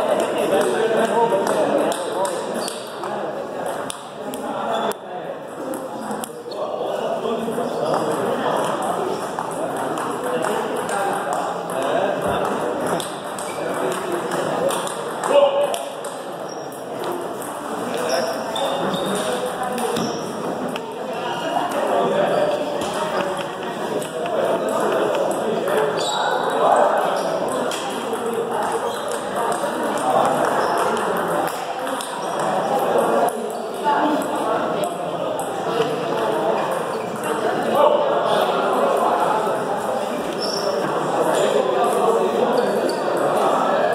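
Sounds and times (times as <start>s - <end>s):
murmur of voices: 0.0s - 43.9s
table tennis ball clicks: 27.7s - 32.5s.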